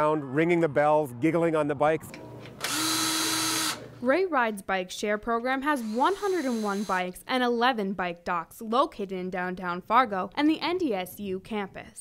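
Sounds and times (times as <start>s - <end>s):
cordless power drill running: 2.4s - 4.0s, 5.7s - 7.1s.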